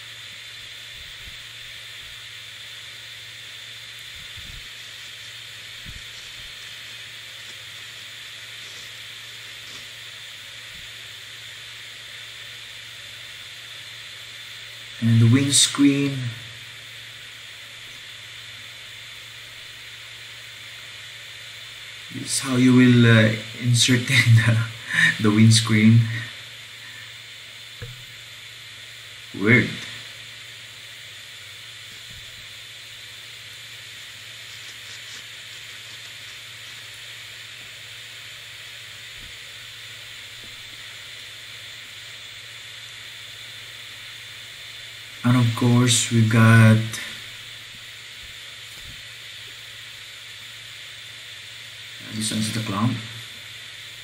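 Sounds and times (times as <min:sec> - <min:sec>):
steady background hiss: 0:00.0 - 0:54.0.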